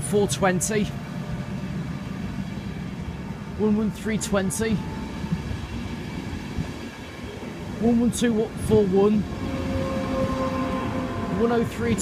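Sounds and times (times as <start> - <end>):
train coaches rumbling past: 0.0 - 12.0.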